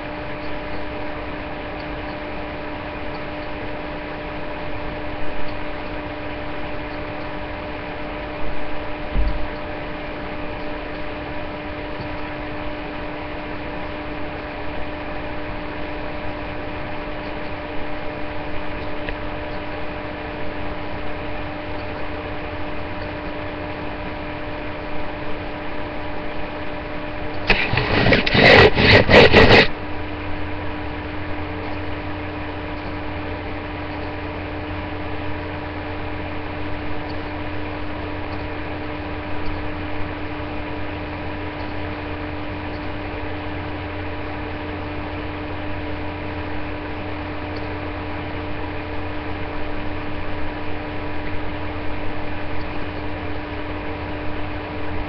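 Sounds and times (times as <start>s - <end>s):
electrical hum with hiss: 0.0s - 55.0s
loud crackling burst: 27.4s - 29.7s.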